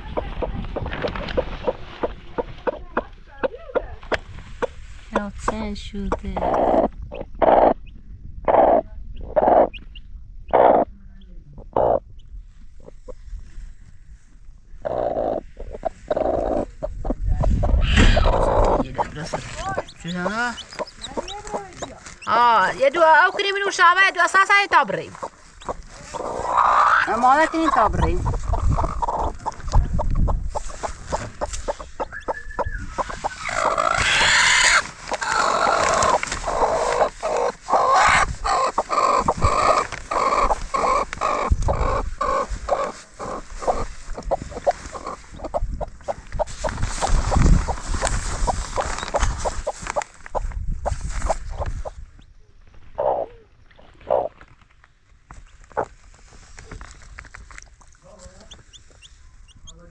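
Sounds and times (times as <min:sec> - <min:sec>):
hen clucking and growling: 0:00.0 - 0:03.9, 0:04.6 - 0:11.0, 0:11.6 - 0:12.2, 0:14.8 - 0:52.0, 0:52.9 - 0:54.5.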